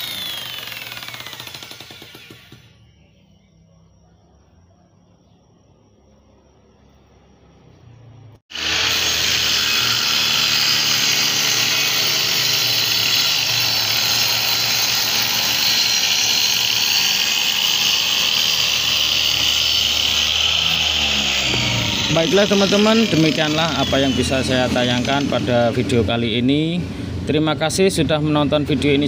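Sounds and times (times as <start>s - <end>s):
circular saw cutting plywood: 0.0s - 2.8s, 8.5s - 26.0s.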